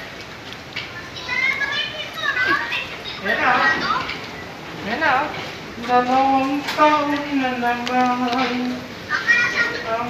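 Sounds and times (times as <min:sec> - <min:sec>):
high-pitched voices calling out: 0:00.8 - 0:06.2, 0:08.4 - 0:10.0.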